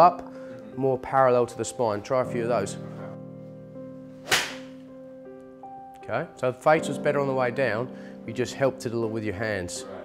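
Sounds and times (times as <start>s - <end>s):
background music: 0.0s - 10.0s
golf club striking ball: 4.2s - 4.8s.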